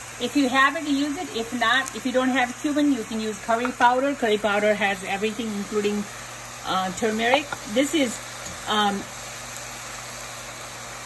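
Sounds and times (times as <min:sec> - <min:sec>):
low steady hum: 0:00.0 - 0:11.0
vegetables sizzling in saucepan: 0:00.0 - 0:11.0.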